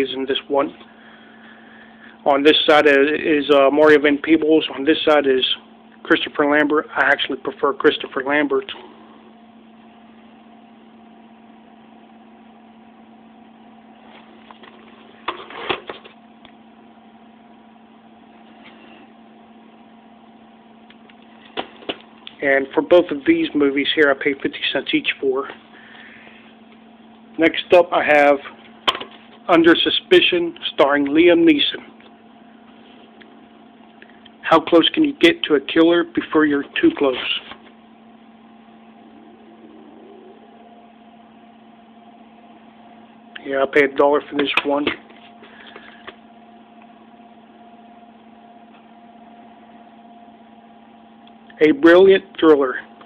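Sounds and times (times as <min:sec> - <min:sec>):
low machine hum: 0:00.0 - 0:53.0.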